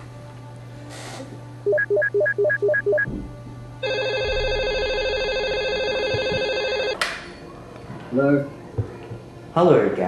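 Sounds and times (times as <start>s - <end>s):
telephone ringing: 1.7s - 3.1s, 3.8s - 7.0s.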